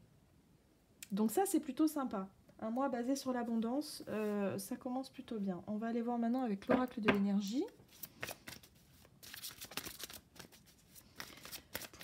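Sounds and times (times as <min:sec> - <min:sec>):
cards being shuffled: 0:07.7 - 0:12.0.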